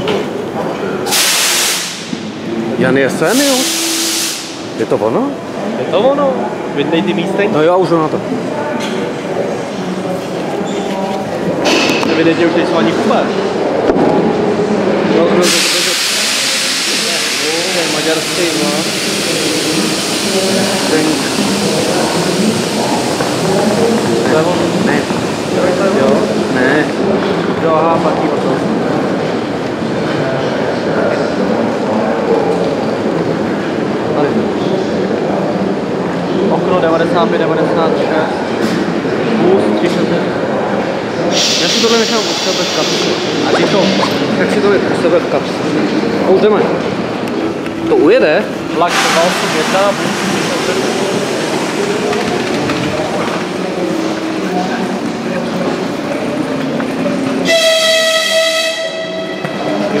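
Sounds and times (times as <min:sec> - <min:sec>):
reverberant station hubbub: 0:00.0 - 1:00.0
train noise: 0:00.0 - 1:00.0
high-pitched railway whistle: 0:57.4 - 0:59.6.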